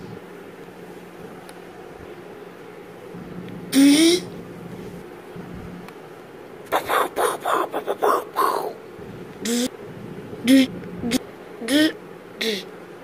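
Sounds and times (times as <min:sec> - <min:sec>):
person making mouth sound effects: 0:06.7 - 0:08.8, 0:09.4 - 0:09.7.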